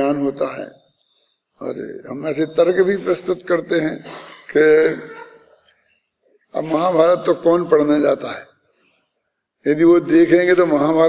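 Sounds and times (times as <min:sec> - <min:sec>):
man clearing his throat: 0:03.9 - 0:05.6.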